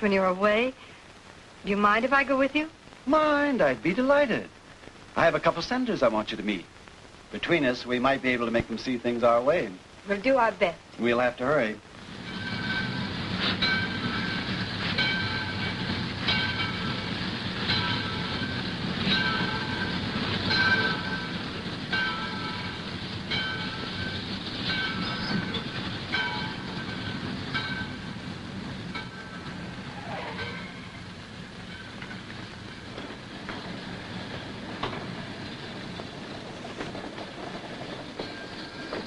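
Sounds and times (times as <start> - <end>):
train rumbling on rails: 7.4 - 39.0
wheel clacks over rail joints: 12.2 - 39.0.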